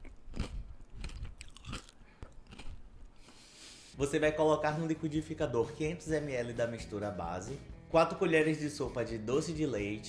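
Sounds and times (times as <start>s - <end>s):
crunchy chewing of ice pop: 0.0s - 3.4s.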